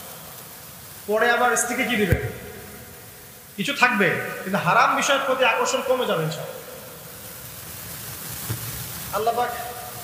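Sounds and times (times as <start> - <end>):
background hiss: 0.0 - 10.0
soft bump: 2.1 - 2.5.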